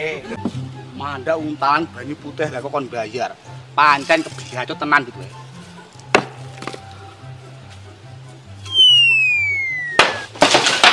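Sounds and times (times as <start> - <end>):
background music with stepping bass: 0.0 - 10.4
cartoon falling whistle: 8.6 - 10.3.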